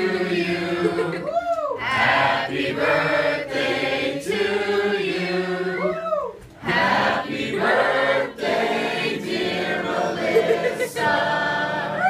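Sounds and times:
group singing without accompaniment: 0:00.0 - 0:12.0.

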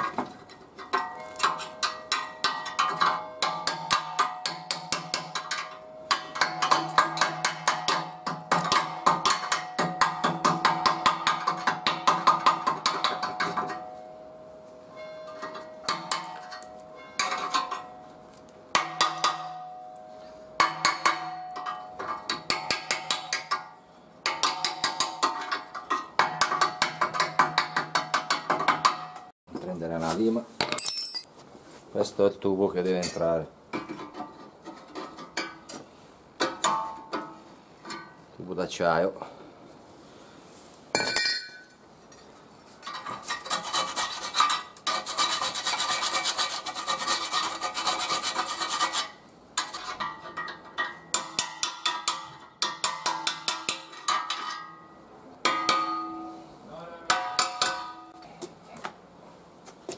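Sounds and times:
axle ringing metallically: 0:00.9 - 0:29.3, 0:30.7 - 0:31.3, 0:47.5 - 0:58.2
hammer striking chisel on metal: 0:01.0 - 0:13.9, 0:15.3 - 0:17.9, 0:18.7 - 0:19.8, 0:20.6 - 0:29.3, 0:43.4 - 0:54.8, 0:55.4 - 0:56.5, 0:57.1 - 0:58.2.

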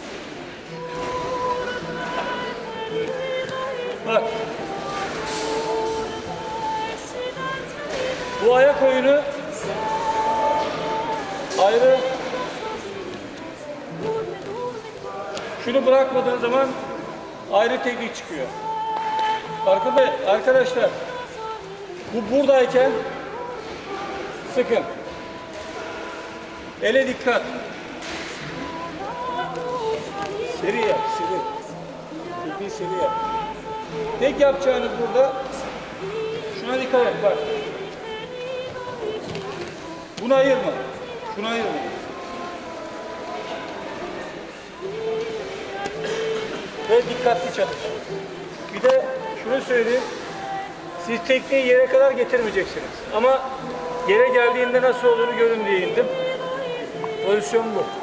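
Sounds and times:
background music of held notes: 0:00.0 - 0:58.0.

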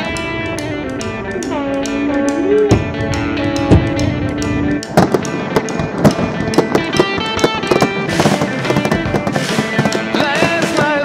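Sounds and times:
crackling hiss of fireworks: 0:00.0 - 0:11.0
fireworks popping: 0:00.0 - 0:11.0
music track: 0:00.0 - 0:11.0.

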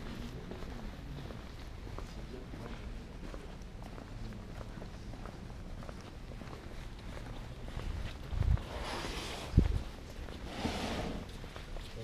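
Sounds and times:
footsteps: 0:00.0 - 0:12.0.

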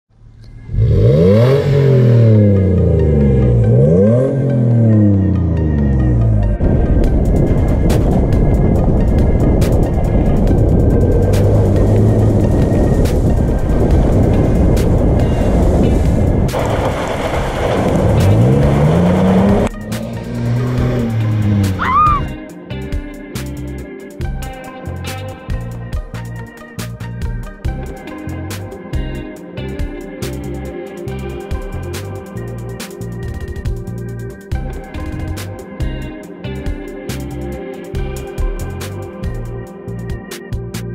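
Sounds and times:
engine revving: 0:00.2 - 0:22.4
gravel and mud striking body: 0:10.6 - 0:21.8
tyre and spray noise: 0:13.0 - 0:21.8.

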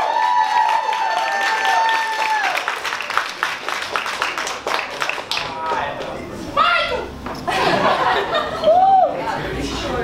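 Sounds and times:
audience cheering: 0:00.0 - 0:03.6
audience clapping: 0:00.0 - 0:06.2
long high whoop: 0:08.6 - 0:09.2.

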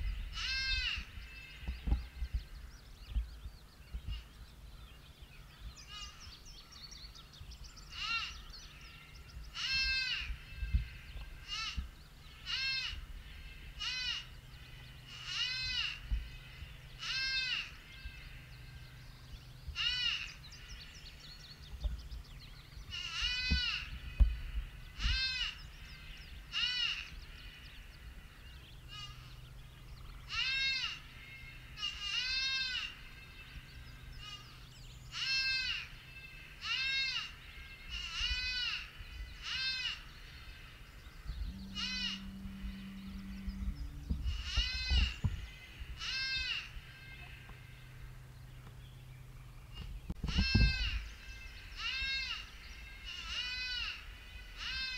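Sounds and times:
high-pitched animal distress bleat: 0:00.3 - 0:01.7, 0:05.9 - 0:06.2, 0:07.9 - 0:08.4, 0:09.6 - 0:18.6, 0:19.8 - 0:20.3, 0:22.9 - 0:24.1, 0:25.0 - 0:25.7, 0:26.5 - 0:27.7, 0:28.9 - 0:29.4, 0:30.3 - 0:40.7, 0:41.4 - 0:48.0, 0:50.3 - 0:54.9.

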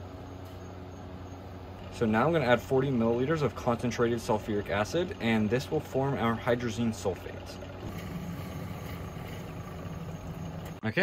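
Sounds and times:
laboratory equipment humming: 0:00.0 - 0:11.0.

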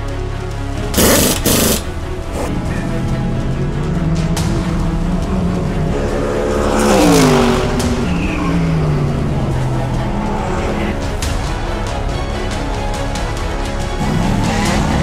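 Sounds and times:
background music: 0:00.0 - 0:15.0
race car passing at speed: 0:04.3 - 0:10.9.

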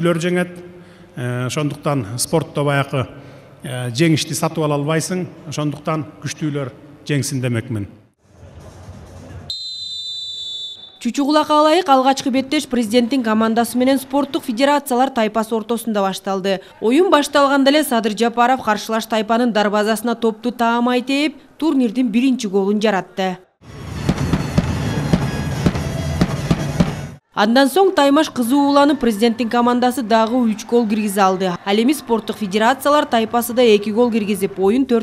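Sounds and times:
low hall noise: 0:00.0 - 0:18.3
referee whistle blast: 0:09.5 - 0:11.1
crowd din: 0:28.4 - 0:35.0.

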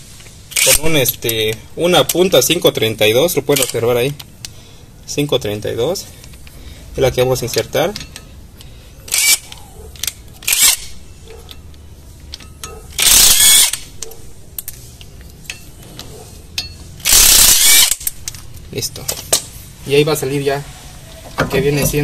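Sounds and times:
cordless power driver spinning: 0:09.1 - 0:09.5, 0:10.4 - 0:10.9, 0:13.0 - 0:13.9, 0:17.0 - 0:18.2.

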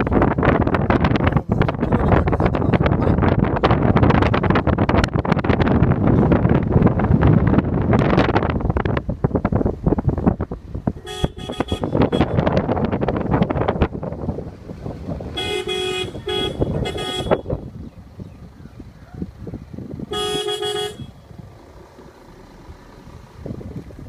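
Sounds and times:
wind buffeting microphone: 0:00.0 - 0:24.0
vehicle horn honking: 0:11.0 - 0:12.6, 0:15.4 - 0:17.7, 0:20.1 - 0:21.3.

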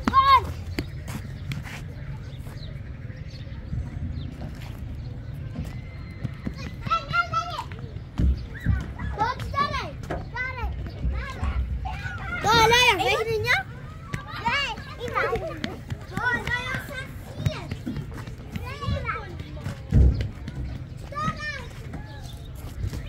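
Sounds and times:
child shouting: 0:00.0 - 0:00.5, 0:08.5 - 0:15.6
children calling and chattering: 0:00.0 - 0:23.0.

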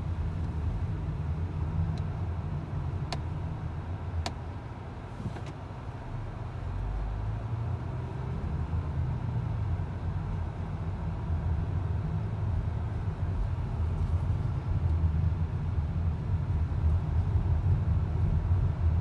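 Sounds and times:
car cabin road rumble: 0:00.0 - 0:19.0.

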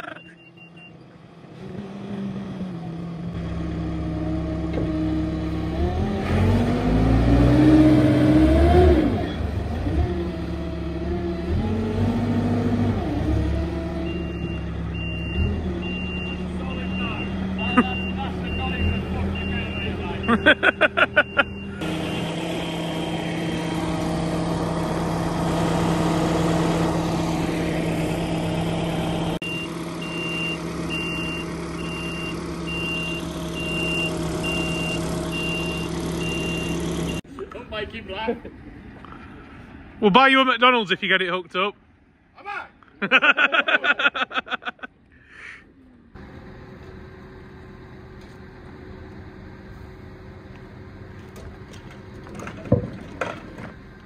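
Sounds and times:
diesel engine revving: 0:01.2 - 0:37.4
reversing alarm beeping: 0:14.0 - 0:22.4, 0:29.4 - 0:37.2.

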